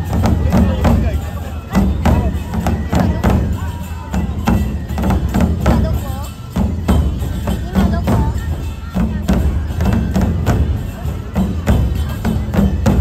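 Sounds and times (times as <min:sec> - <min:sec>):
crowd voices: 0:00.0 - 0:13.0
large drums beaten rhythmically: 0:00.0 - 0:13.0.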